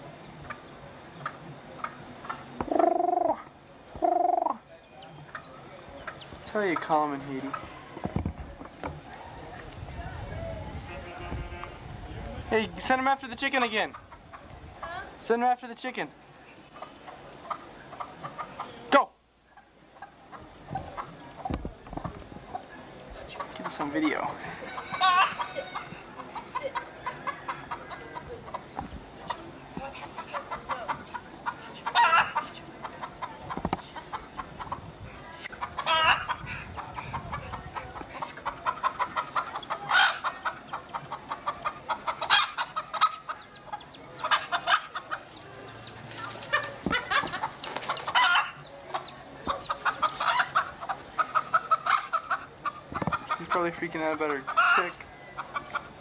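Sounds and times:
chicken clucking: 0.2s - 8.0s, 16.7s - 18.9s, 19.6s - 56.0s
chicken squawking: 2.7s - 3.4s, 4.0s - 4.6s, 30.2s - 32.5s, 35.5s - 43.4s, 46.5s - 48.6s, 54.5s - 55.9s.

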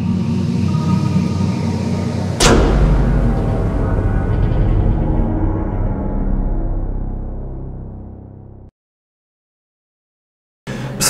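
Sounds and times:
deep low rumble: 0.0s - 8.7s
low drone with held tones: 0.0s - 8.7s
sharp boom-like hit: 2.2s - 8.7s.

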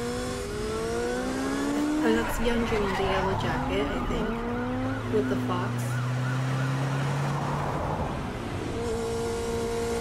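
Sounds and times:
vehicle noise: 0.0s - 10.0s.

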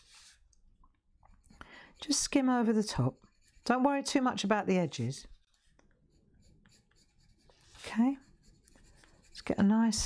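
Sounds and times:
coloured pencil scratching paper: 0.0s - 0.4s, 1.3s - 10.0s.

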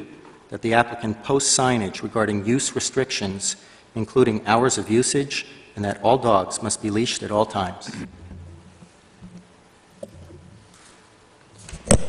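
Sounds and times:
faint low murmur: 0.0s - 11.5s.

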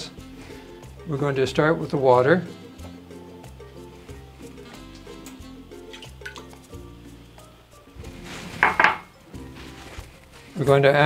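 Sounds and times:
background music: 0.0s - 11.0s
water splashing into metal pot: 5.8s - 6.7s.

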